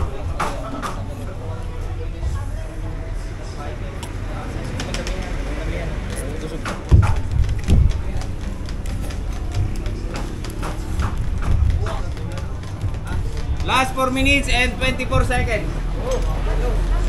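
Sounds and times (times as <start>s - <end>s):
background chatter: 0.0s - 17.0s
steady low hum: 0.0s - 17.0s
low thumps: 4.0s - 16.1s.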